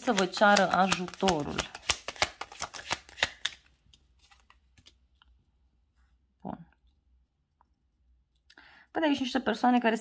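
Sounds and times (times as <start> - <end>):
person speaking: 0.0 - 3.0
soft in-breath: 8.5 - 8.9.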